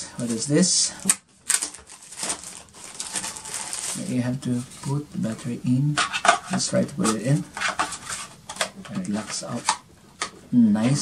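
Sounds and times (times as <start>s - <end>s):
plastic packaging crinkling: 0.2s - 5.0s.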